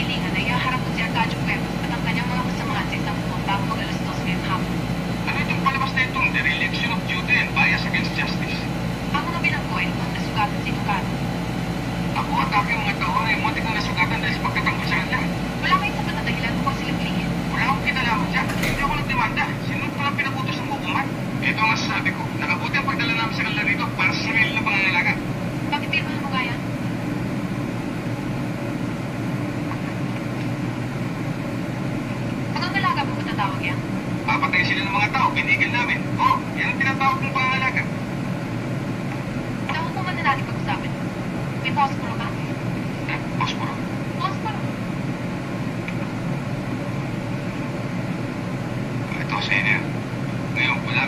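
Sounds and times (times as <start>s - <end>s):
film dialogue: 0.0s - 51.0s
low hum: 0.0s - 51.0s.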